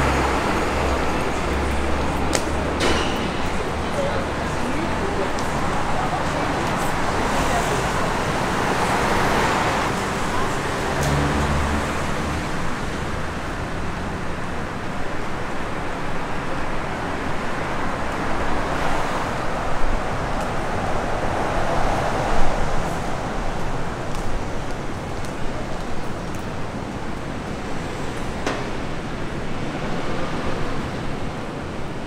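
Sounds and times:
road noise with cars passing: 0.0 - 32.0.

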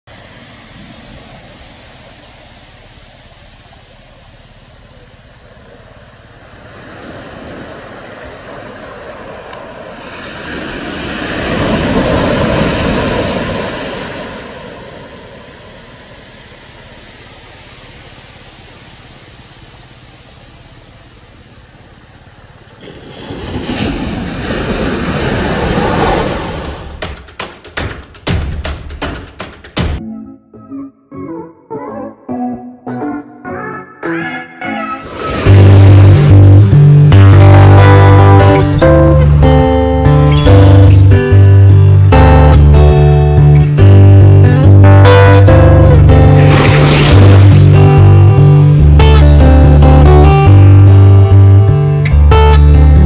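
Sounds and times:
waves breaking on a sandy beach: 0.1 - 27.6, 44.5 - 48.8.

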